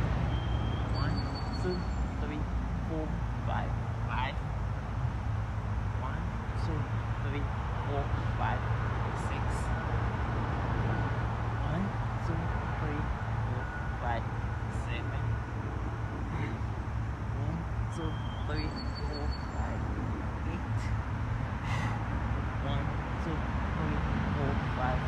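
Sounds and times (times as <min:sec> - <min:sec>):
distant road traffic rumble: 0:00.0 - 0:25.0
faint short chirps: 0:00.3 - 0:02.1.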